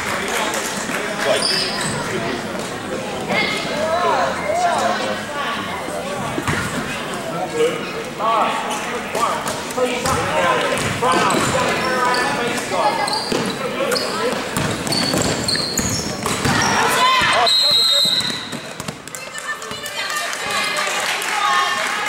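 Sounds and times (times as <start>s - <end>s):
crowd voices and shouts: 0.0s - 22.0s
sneaker squeaks on hardwood: 1.4s - 2.1s, 13.0s - 16.8s
basketball bouncing: 10.8s - 11.6s, 14.3s - 17.4s, 18.2s - 19.2s
referee's whistle: 16.6s - 18.6s.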